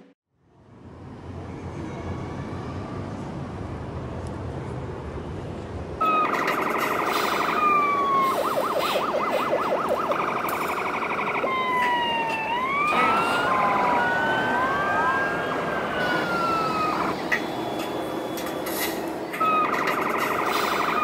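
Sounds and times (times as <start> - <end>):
toy sirens sweeping: 6.0 - 21.0.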